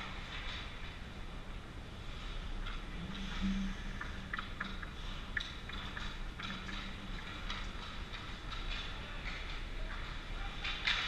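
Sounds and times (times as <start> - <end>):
low arena hum: 0.0 - 11.0.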